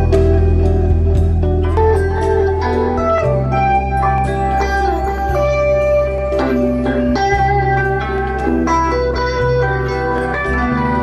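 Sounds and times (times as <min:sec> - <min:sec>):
bass line: 0:00.0 - 0:11.0
electric guitar lead: 0:00.0 - 0:11.0
keyboards: 0:00.0 - 0:11.0.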